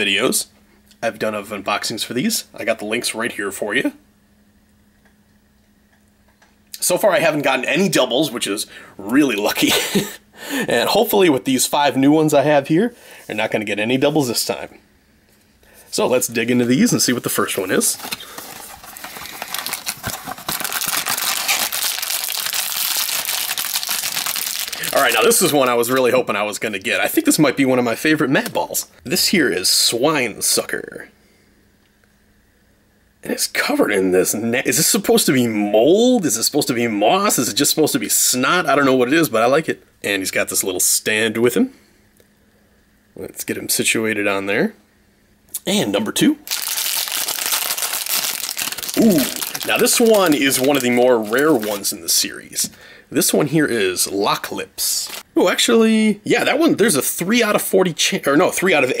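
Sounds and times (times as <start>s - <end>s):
foil bag crinkling: 16.2s - 26.1s, 46.4s - 52.2s, 54.8s - 55.2s.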